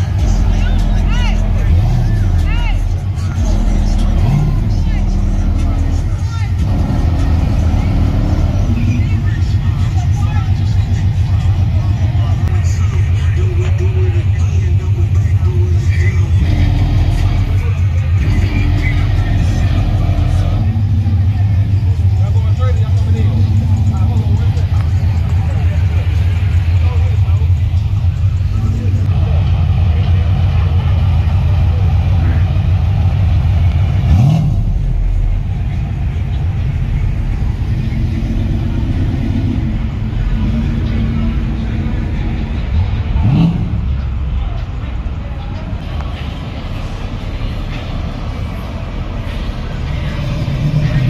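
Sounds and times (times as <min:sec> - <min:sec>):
engine revving: 0:00.0 - 0:13.2, 0:16.2 - 0:44.6, 0:45.8 - 0:51.0
bass-heavy music: 0:00.0 - 0:51.0
car engines running: 0:00.0 - 0:51.0.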